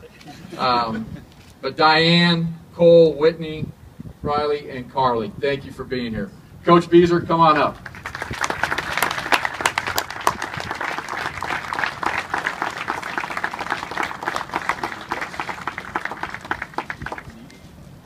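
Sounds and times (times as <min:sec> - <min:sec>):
audience applauding: 0:07.8 - 0:17.4.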